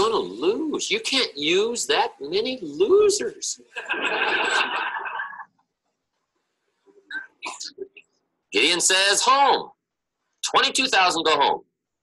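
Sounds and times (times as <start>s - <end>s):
large audience laughing: 3.8s - 5.5s.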